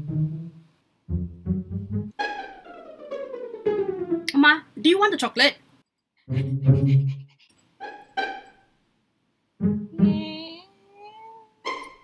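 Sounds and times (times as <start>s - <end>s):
high-pitched whimpers: 10.0s - 11.6s
person's voice: 10.0s - 11.6s.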